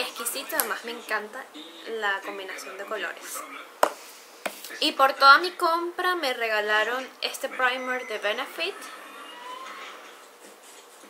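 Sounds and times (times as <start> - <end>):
faint rising tone: 7.8 - 10.3.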